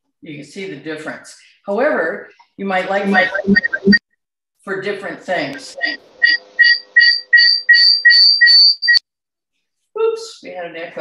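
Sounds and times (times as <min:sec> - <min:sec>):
shrill audio feedback squeal: 0:03.0 - 0:04.0, 0:05.7 - 0:09.0.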